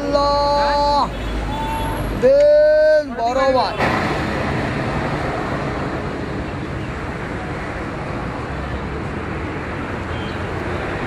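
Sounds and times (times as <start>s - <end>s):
traffic noise: 0.0s - 11.0s
vehicle horns: 0.9s - 2.2s.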